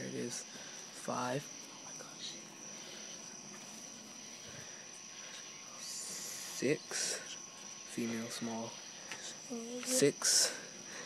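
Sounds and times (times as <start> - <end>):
night insects trilling: 0.0 - 11.0.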